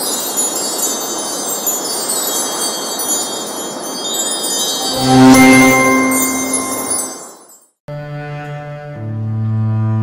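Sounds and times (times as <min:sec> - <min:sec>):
sparkling high ringing tones: 0:00.0 - 0:07.8.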